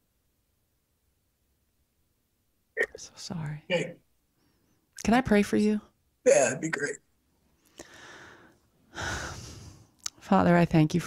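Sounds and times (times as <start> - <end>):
person breathing: 7.6 - 10.0.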